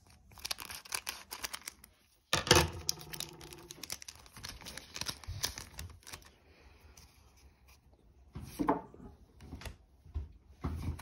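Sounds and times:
cards rustling and clicking: 0.0s - 2.0s, 2.7s - 6.4s
foil pack crinkling: 0.0s - 2.1s, 2.8s - 6.4s.

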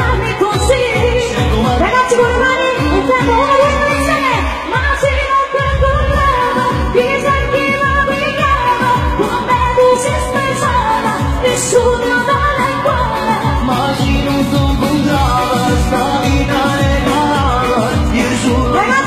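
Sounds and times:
live band playing pop: 0.0s - 19.0s
person singing: 0.0s - 19.0s.

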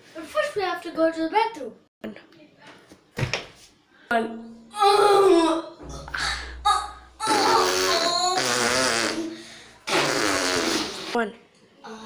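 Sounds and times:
long fart noises: 7.2s - 11.2s.

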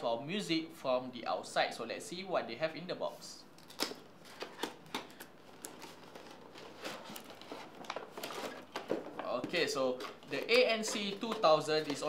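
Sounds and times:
plastic packaging crinkling: 3.6s - 12.0s.

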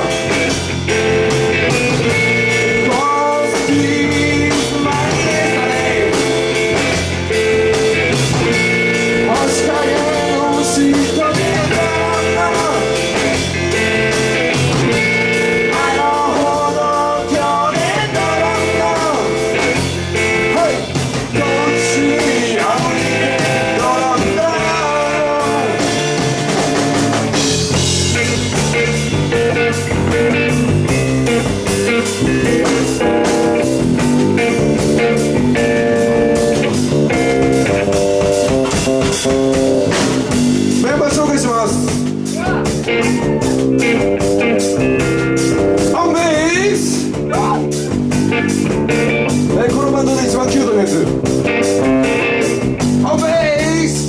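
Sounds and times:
drum kit: 0.0s - 54.0s
electric bass: 0.0s - 54.0s
electric guitar: 0.0s - 54.0s
man singing lead vocal: 2.6s - 7.0s, 9.1s - 13.9s, 15.4s - 26.8s, 40.8s - 43.6s, 45.8s - 47.9s, 49.5s - 51.2s, 53.0s - 54.0s.

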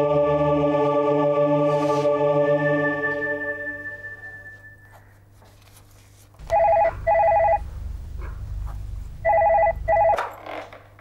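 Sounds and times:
telephone warbling double ring: 6.5s - 7.6s, 9.3s - 10.2s
low rumble: 6.8s - 9.9s.

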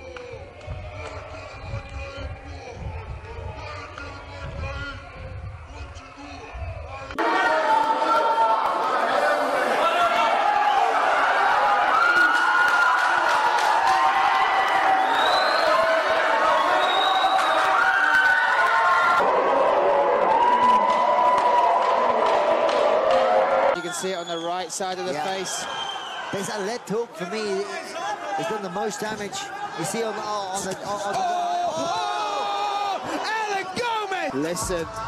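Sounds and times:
crowd shouting and yelling: 0.0s - 35.0s.

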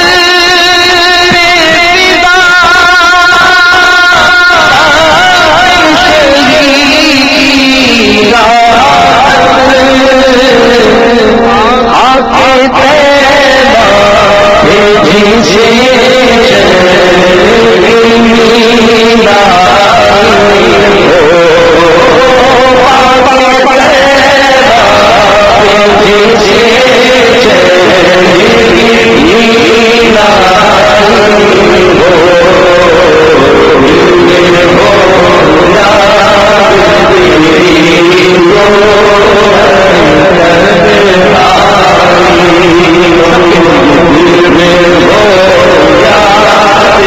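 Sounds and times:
man singing into a microphone: 0.0s - 47.0s.

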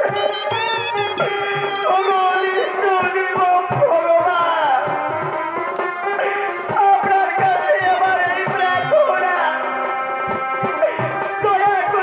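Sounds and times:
folk music with wavering melody: 0.0s - 3.3s
drum strokes: 0.0s - 12.0s.

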